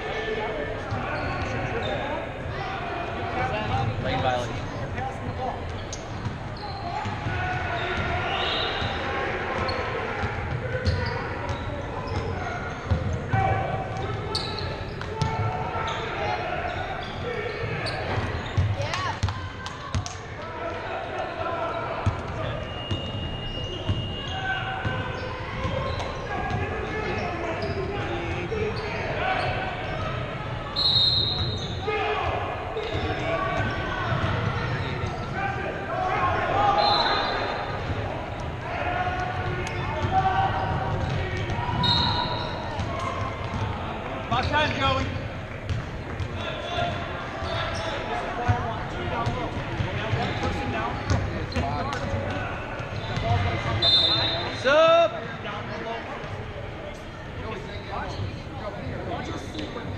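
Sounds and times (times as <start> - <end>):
voices calling out: 0.0 - 59.9
basketball bouncing on court: 5.7 - 6.4, 9.6 - 15.6, 17.7 - 20.2, 33.6 - 35.3, 39.1 - 41.9, 42.8 - 43.8, 45.6 - 46.9, 49.2 - 53.5.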